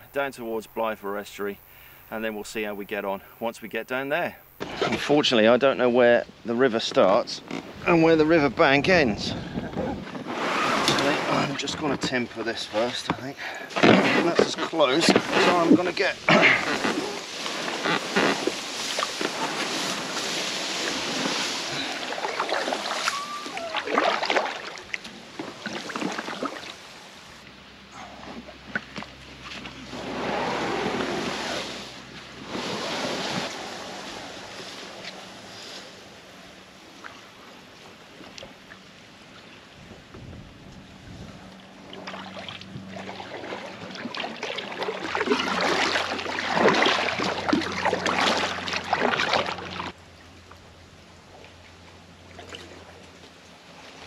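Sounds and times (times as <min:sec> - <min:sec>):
wind on microphone: 0:07.4 - 0:12.1, 0:39.7 - 0:41.6
water splashing and swishing: 0:08.6 - 0:50.4, 0:51.2 - 0:54.0.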